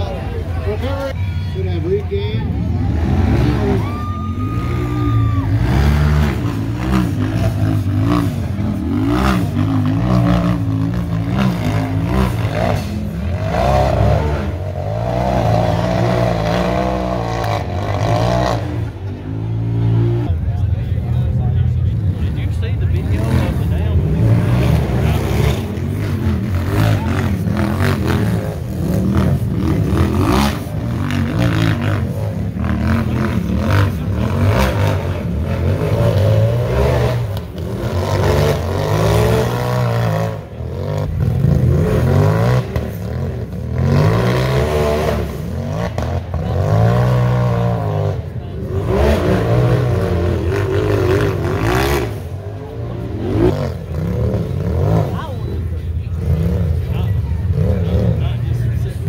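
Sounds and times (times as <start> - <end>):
engines revving: 0.0 - 59.0.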